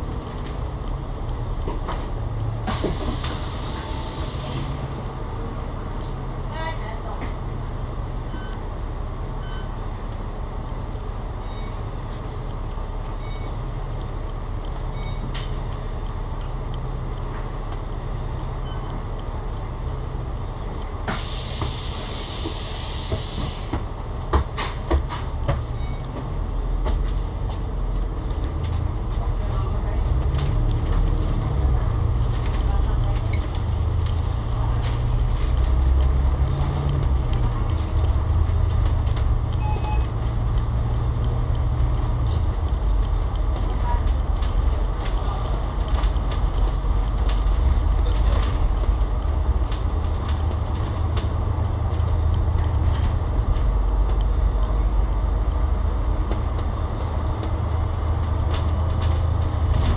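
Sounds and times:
bus diesel engine idling: 0.0s - 59.9s.

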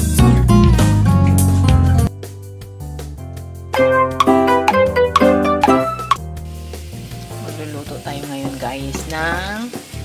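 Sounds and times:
background music: 0.0s - 10.0s
ginger sizzling in hot oil: 6.2s - 10.0s.

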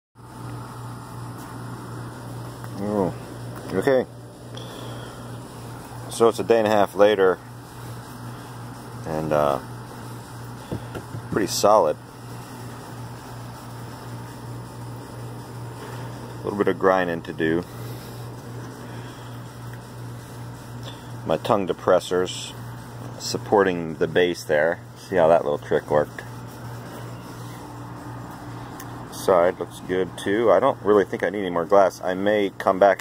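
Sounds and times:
low mechanical hum: 0.2s - 33.0s.

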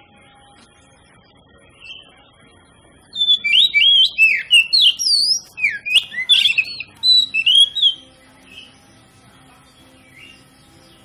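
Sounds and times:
bird singing whistled notes: 1.8s - 2.2s, 3.1s - 8.9s, 9.8s - 11.0s.

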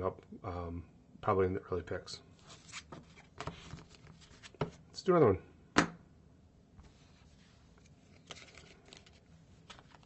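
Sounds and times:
cardboard cards rustling: 2.4s - 4.8s, 7.6s - 10.0s.

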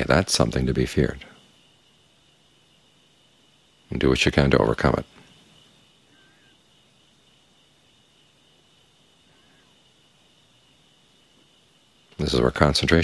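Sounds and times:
faint chirps: 0.0s - 13.0s
high-pitched insect trill: 0.0s - 13.0s.

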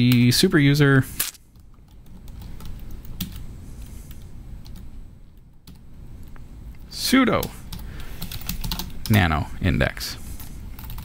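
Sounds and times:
computer keyboard typing: 1.6s - 3.4s, 5.4s - 5.8s, 7.4s - 9.3s, 10.7s - 11.0s.

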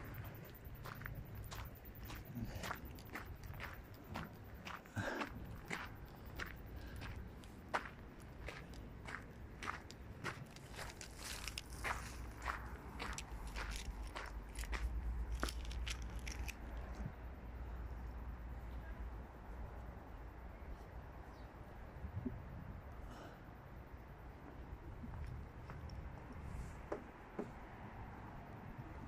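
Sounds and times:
footsteps on gravel: 0.8s - 16.7s.

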